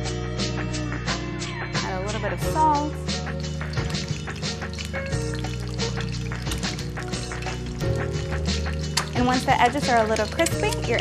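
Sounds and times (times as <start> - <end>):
background music low tones: 0.0 - 11.0
egg frying in crackling oil: 3.2 - 11.0.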